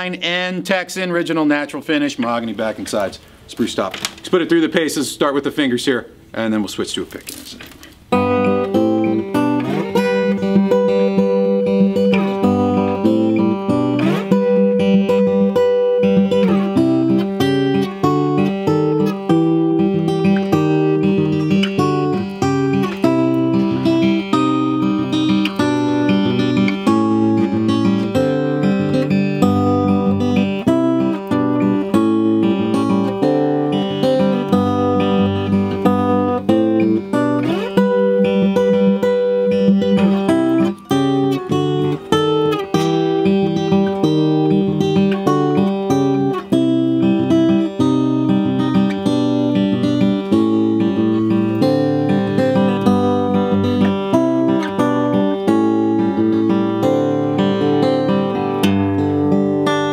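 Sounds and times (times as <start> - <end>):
acoustic guitar played fingerstyle: 7.3 - 59.9.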